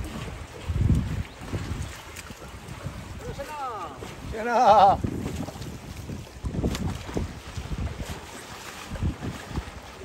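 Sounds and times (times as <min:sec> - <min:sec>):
water lapping: 0:00.0 - 0:10.0
wind buffeting microphone: 0:00.0 - 0:10.0.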